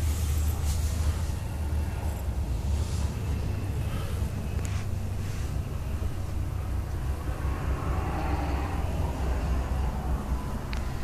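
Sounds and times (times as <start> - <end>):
faint scattered noise: 0.0 - 11.0
steady low rumble: 0.0 - 11.0.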